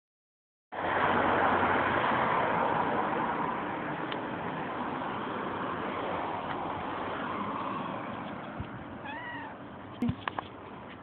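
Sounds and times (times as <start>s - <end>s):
cat meowing: 9.0s - 9.6s.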